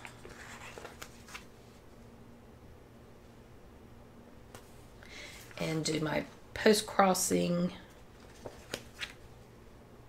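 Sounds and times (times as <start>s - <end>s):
paper sticker sheet rustling: 0.0s - 1.5s, 7.9s - 9.3s.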